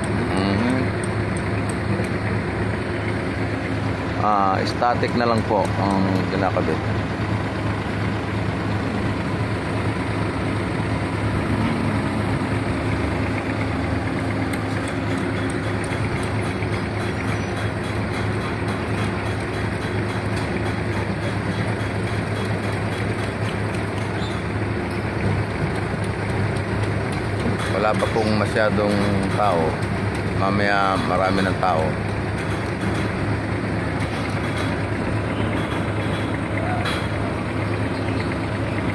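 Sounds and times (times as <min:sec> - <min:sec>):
low engine hum: 0:00.0 - 0:38.9.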